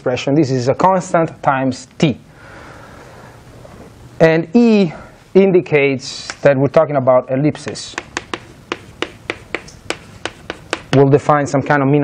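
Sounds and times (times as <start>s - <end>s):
chalk tapping on chalkboard: 7.6s - 11.1s.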